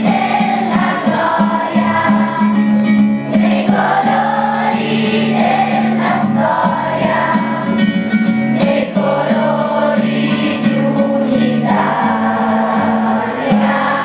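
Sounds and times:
children's choir singing: 0.0s - 14.0s.

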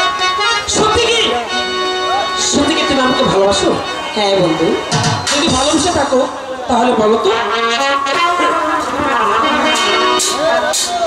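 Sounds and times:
held wind instrument line: 0.0s - 11.0s
stage band playing: 0.0s - 11.0s.

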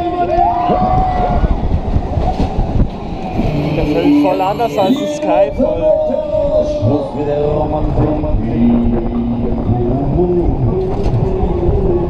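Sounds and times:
wind rushing over microphone: 0.0s - 12.0s
long voice call: 2.9s - 6.0s.

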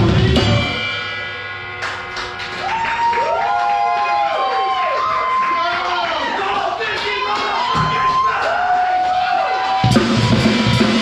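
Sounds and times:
crowd cheering: 1.8s - 11.0s.

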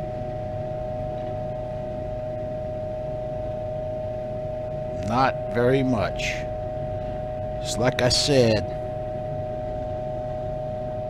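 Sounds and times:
steady humming tone: 0.0s - 11.0s.

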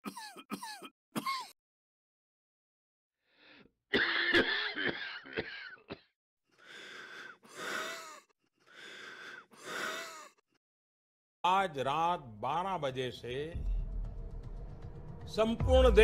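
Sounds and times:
person coughing harshly: 0.0s - 1.6s, 3.9s - 6.1s
wheezing breaths: 6.5s - 10.4s.

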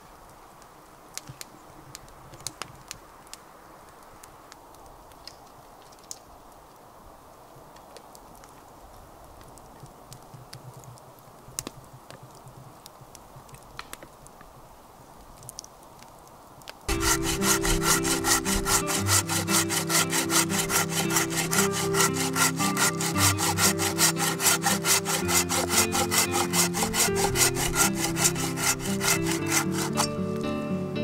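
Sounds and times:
hand saw cutting log: 16.9s - 30.2s
background music: 16.9s - 31.0s.

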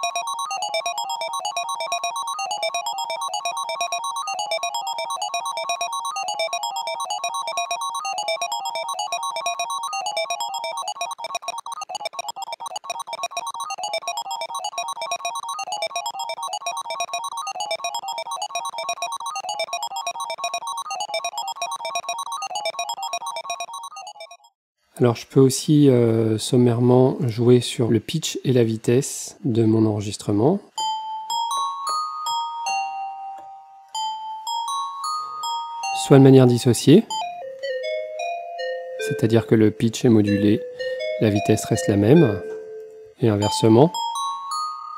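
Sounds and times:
stuttering sliced synth loop: 0.0s - 24.5s.

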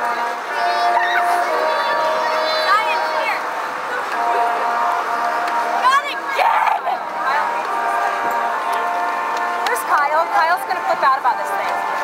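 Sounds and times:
brass quartet playing chords: 0.0s - 12.0s.

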